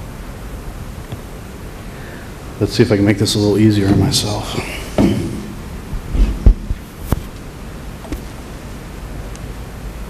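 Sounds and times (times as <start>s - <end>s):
microphone handling thumps: 3.8s - 8.3s.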